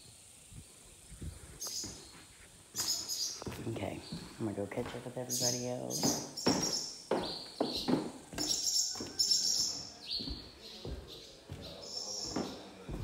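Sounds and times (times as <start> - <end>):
birds chirping: 0.0 - 13.0
footsteps on debris: 1.6 - 13.0.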